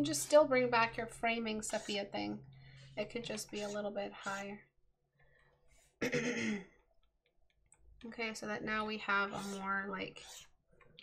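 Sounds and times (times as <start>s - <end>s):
person coughing: 6.0s - 6.8s.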